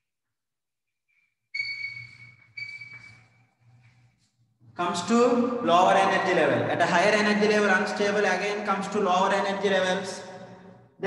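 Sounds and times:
chalk squeaking on blackboard: 1.5 - 3.8.

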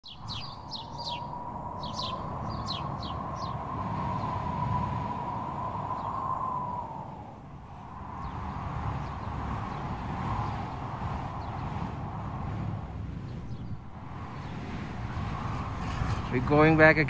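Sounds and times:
small bird chirping: 0.0 - 3.6.

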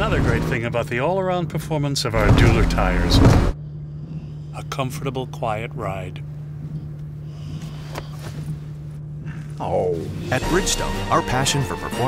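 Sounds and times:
road and tyre noise in car cabin: 0.0 - 10.2.

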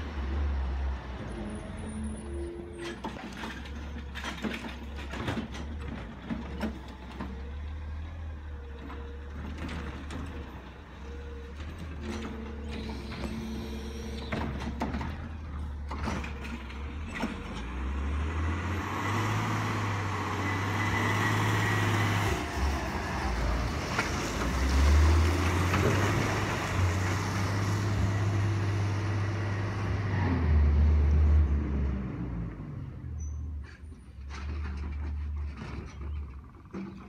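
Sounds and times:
diesel truck driving past: 0.0 - 36.8.

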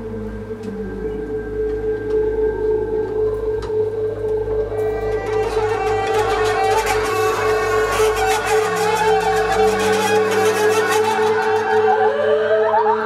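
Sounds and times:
bowed double basses: 0.0 - 13.0
clarinet: 0.0 - 13.0
saxophone: 0.0 - 13.0.

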